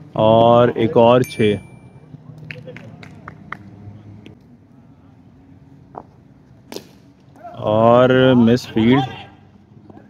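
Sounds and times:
faint low murmur: 0:01.5 - 0:08.1.

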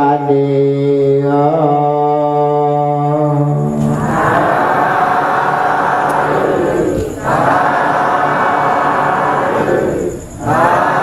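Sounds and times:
man chanting: 0:00.0 - 0:11.0
group chanting: 0:03.6 - 0:11.0.

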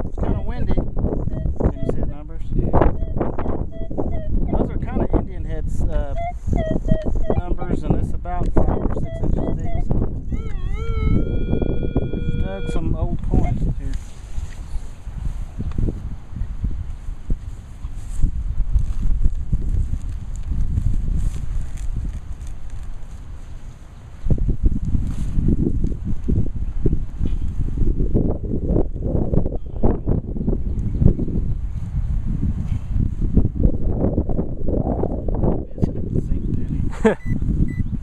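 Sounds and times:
wind rumbling on microphone: 0:00.0 - 0:38.0.

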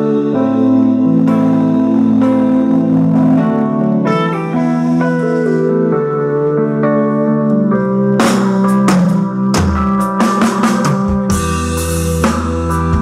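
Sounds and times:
electric guitars sustained chords: 0:00.0 - 0:13.0.

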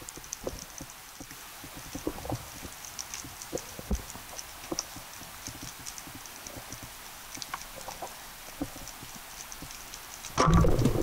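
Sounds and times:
faint clicks and crackles: 0:00.0 - 0:11.0.

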